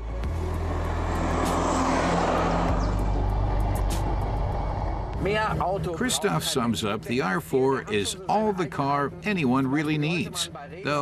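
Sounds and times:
car engine passing: 0.0s - 5.9s.

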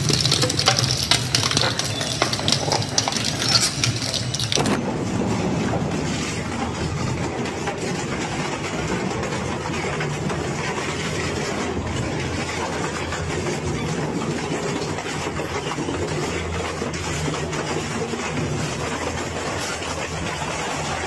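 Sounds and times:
shredder crushing metal: 0.0s - 4.8s.

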